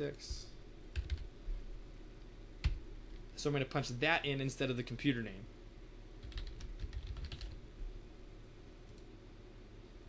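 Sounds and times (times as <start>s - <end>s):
computer keyboard typing: 0.9s - 1.3s, 6.2s - 7.6s.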